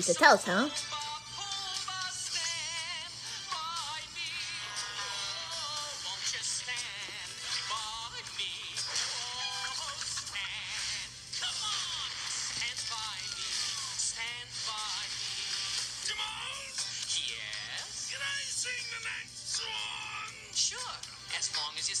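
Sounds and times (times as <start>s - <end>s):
cartoon music from phone speaker: 0.0s - 22.0s.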